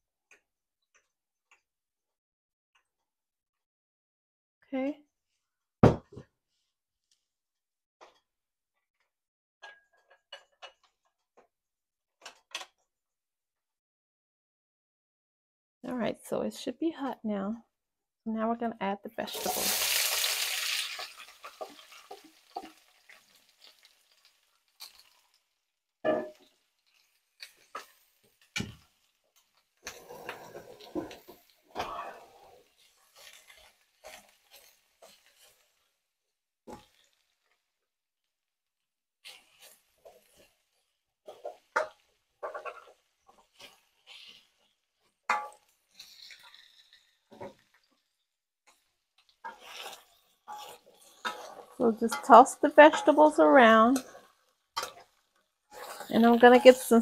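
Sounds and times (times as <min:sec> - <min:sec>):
spatulas scraping and knocking pan: 0:19.2 - 0:20.0, 0:20.7 - 0:25.3, 0:26.1 - 0:36.0, 0:39.2 - 0:57.0
vegetables sizzling in hot oil: 0:19.2 - 0:36.1, 0:36.7 - 0:37.8, 0:39.2 - 0:57.0.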